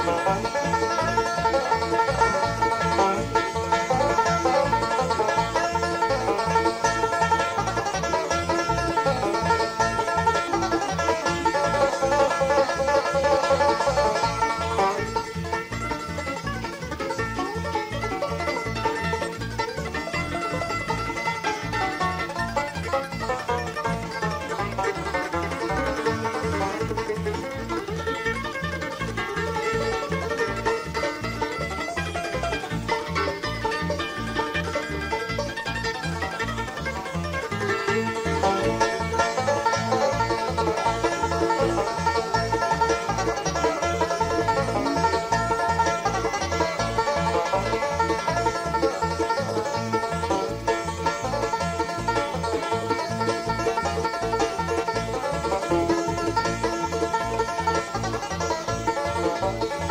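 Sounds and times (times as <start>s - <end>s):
banjo leading: 0.0s - 59.9s
bluegrass band playing: 0.0s - 59.9s.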